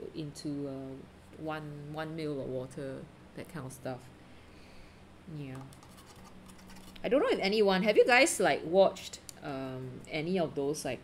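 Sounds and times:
paintbrush scratching on paper: 5.8s - 7.0s.

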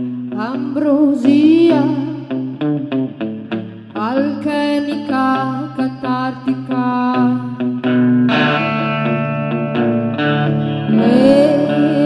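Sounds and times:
electric guitar with effects: 0.0s - 12.0s
woman singing: 0.3s - 2.4s, 4.0s - 7.6s, 10.9s - 12.0s
low bass notes: 10.8s - 12.0s.

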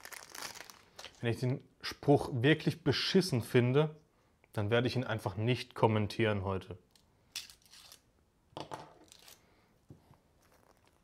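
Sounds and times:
fortune cookie crunching: 10.2s - 11.0s.

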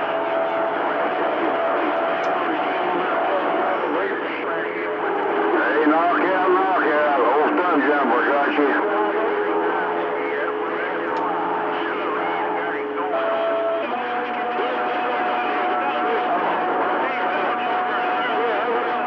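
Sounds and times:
garbled radio voices: 0.0s - 19.0s
whistling radio tones: 0.0s - 19.0s.

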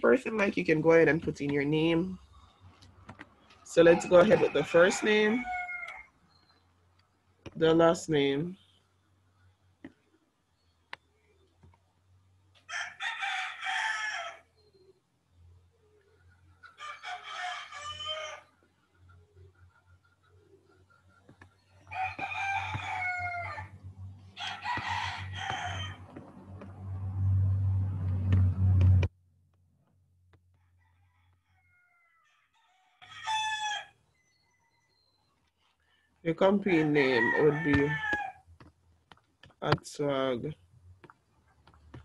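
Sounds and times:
rooster crowing: 3.8s - 6.2s, 12.7s - 14.5s, 16.8s - 18.6s, 21.8s - 26.1s, 30.6s - 35.0s, 36.7s - 38.4s.

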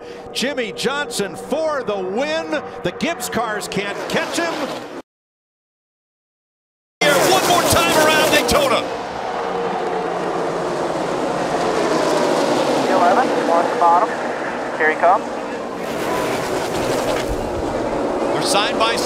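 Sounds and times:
stock cars racing engines drone: 0.0s - 5.0s, 7.0s - 19.0s
voice: 0.3s - 4.7s, 7.0s - 8.9s, 12.9s - 14.2s, 14.8s - 15.2s, 18.3s - 19.0s.

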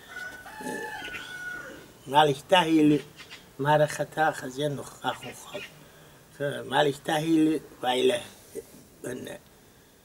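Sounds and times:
rooster crowing: 0.0s - 1.9s.

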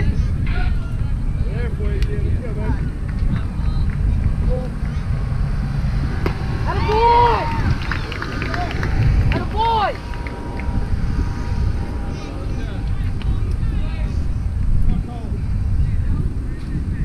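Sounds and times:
wind rumble on microphone: 0.0s - 17.0s.

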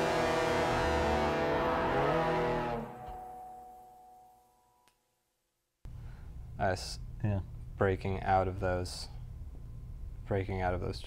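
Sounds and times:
held notes ringing: 0.0s - 4.8s.

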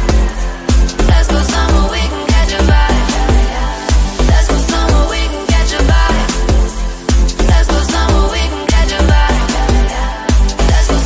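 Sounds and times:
electronic music with bass: 0.0s - 11.0s.

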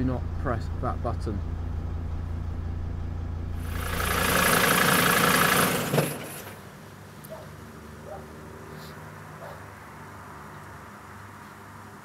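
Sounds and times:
engine idling hum: 0.0s - 9.6s
loud hiss: 3.6s - 6.6s.

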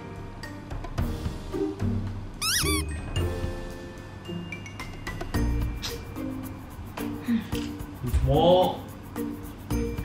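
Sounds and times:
background music: 0.0s - 10.0s
cat meowing: 2.4s - 2.9s.

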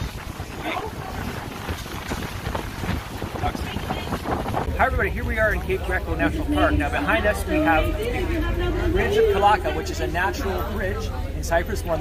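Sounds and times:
wind buffeting microphone: 0.0s - 8.7s.

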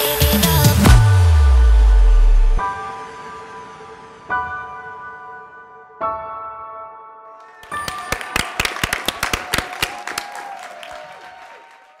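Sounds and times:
people clapping: 7.4s - 12.0s.

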